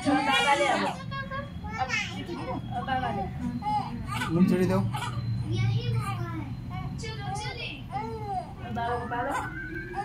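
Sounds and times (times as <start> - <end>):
voices talking together: 0.0 - 10.0
baby crying: 3.6 - 5.3, 9.2 - 10.0.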